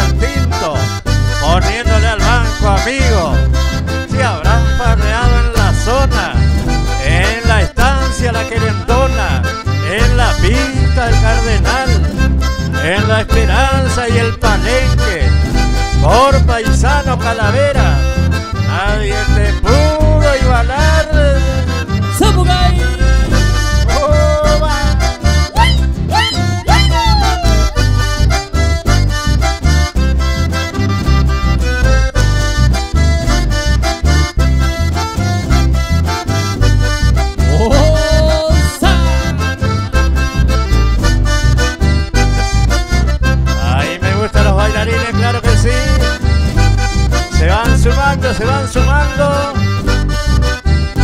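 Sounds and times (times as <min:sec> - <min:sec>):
bass: 0:00.0 - 0:51.0
button accordion melody: 0:00.0 - 0:51.0
strummed acoustic guitar: 0:00.0 - 0:51.0.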